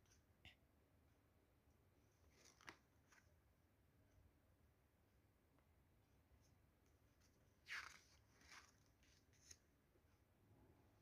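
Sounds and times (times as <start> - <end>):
paper pages turning: 2.2 - 3.3, 7.2 - 9.7.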